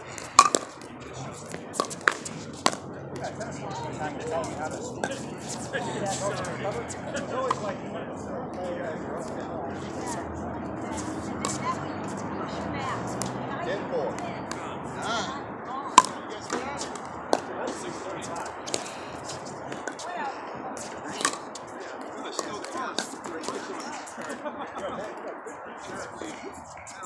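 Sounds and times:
murmur of voices: 0:00.0 - 0:27.0
paddles hitting plastic ball: 0:00.2 - 0:00.9, 0:01.5 - 0:02.8, 0:16.0 - 0:17.5, 0:21.2 - 0:21.6.

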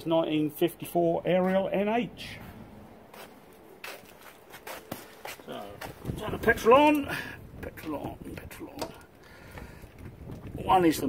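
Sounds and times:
boot footsteps on concrete: 0:02.4 - 0:06.3.

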